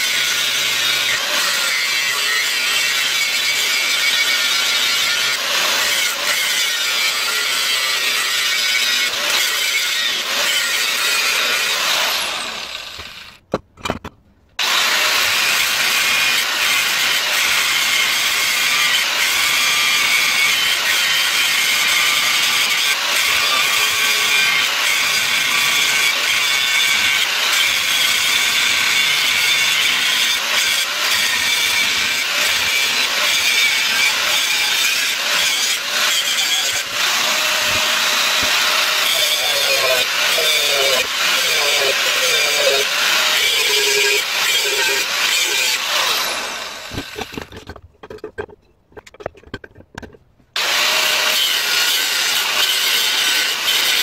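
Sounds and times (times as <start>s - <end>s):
angle grinder cutting steel: 0.0s - 14.0s, 14.6s - 54.0s.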